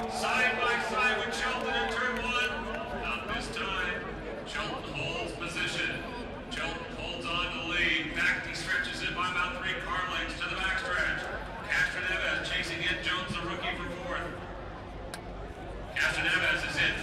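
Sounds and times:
crowd talking indistinctly: 0:00.0 - 0:17.0.

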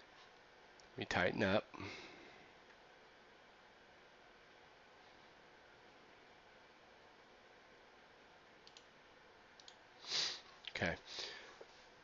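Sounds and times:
faint computer mouse clicks: 0:08.6 - 0:08.9, 0:09.6 - 0:09.8.

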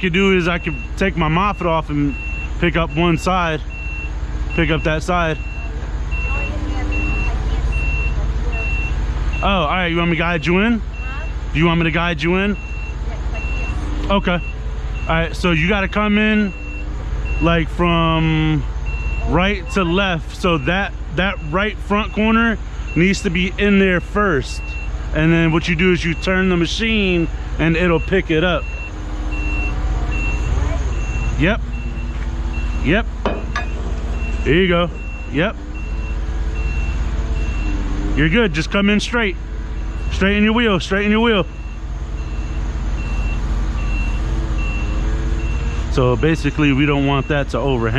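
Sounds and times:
back-up alarm beeping: 0:00.0 - 0:37.9, 0:39.7 - 0:45.9, 0:46.5 - 0:47.8
engine rumble: 0:00.0 - 0:47.9.

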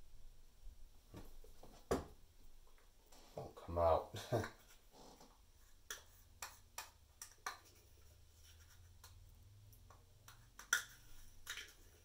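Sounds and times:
metal spoon scraping and tapping cup: 0:05.8 - 0:09.2, 0:09.9 - 0:12.0.

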